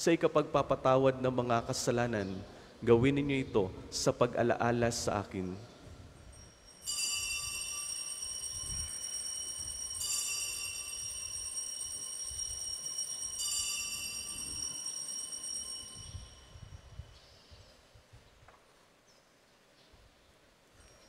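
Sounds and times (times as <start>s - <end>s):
altar bells ringing: 6.3s - 17.8s.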